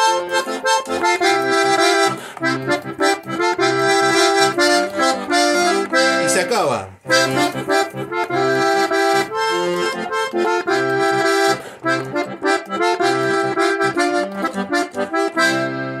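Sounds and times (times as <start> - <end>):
button accordion playing chords: 0.0 - 16.0.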